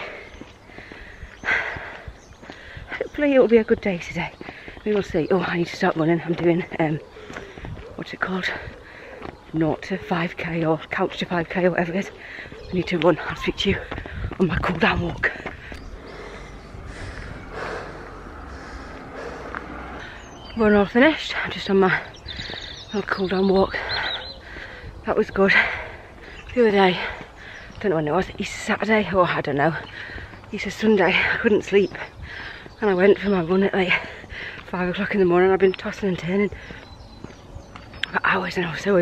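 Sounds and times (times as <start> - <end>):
woman breathing while jogging: 0.0 - 9.6, 12.0 - 20.6, 21.2 - 22.9, 23.6 - 28.5, 29.2 - 34.8, 36.3 - 38.0
quick breath in: 15.5 - 20.4.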